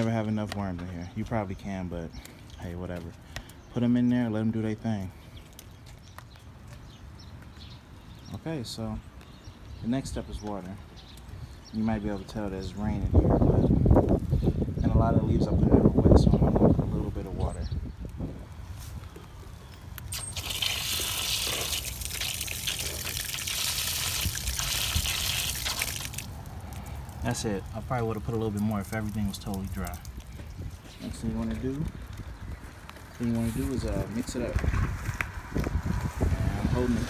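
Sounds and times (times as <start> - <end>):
wind rumble on microphone: 12.2 - 19.9, 28.5 - 37.0
water splashing onto soil: 20.0 - 30.4.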